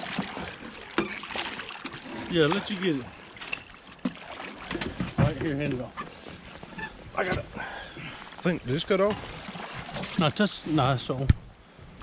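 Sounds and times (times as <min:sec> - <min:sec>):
water splashing: 0:00.0 - 0:11.2.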